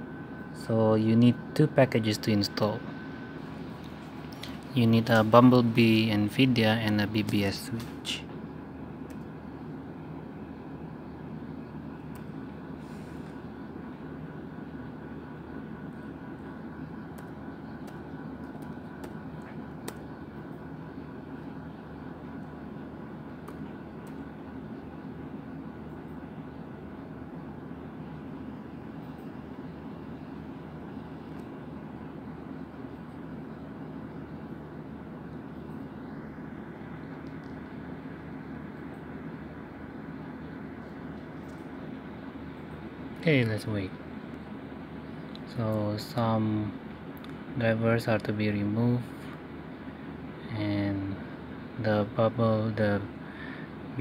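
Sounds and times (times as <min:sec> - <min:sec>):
low room hum: 0:00.0 - 0:54.0
laptop keys clicking: 0:17.1 - 0:20.1, 0:23.4 - 0:24.3.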